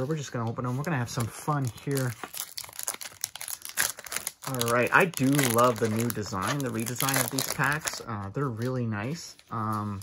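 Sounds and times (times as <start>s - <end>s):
foil wrapper crinkling and tearing: 0.8s - 9.2s.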